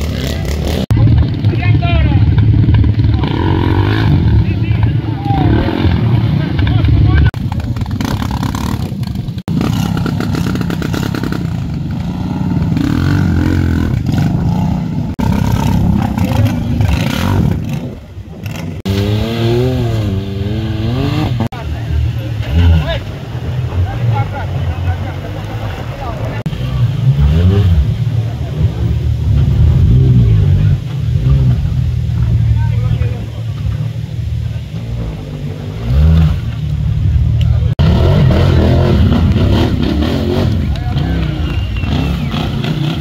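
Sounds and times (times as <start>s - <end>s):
voices: 0.0s - 18.8s, 19.7s - 43.0s
quad bike engine revving: 0.0s - 32.9s, 33.7s - 43.0s
motorcycle engine revving: 0.0s - 43.0s
wheels spinning through mud: 0.0s - 43.0s.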